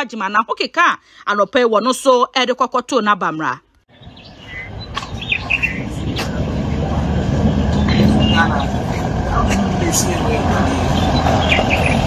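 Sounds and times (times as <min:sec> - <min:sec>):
birds chirping: 0:03.9 - 0:12.0
vehicle engines and tyre rumble: 0:03.9 - 0:12.0.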